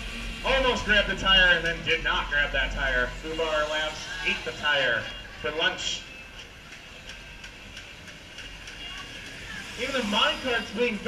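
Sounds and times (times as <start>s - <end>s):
low hum: 0.0s - 6.3s
light regular ticking: 6.3s - 9.6s.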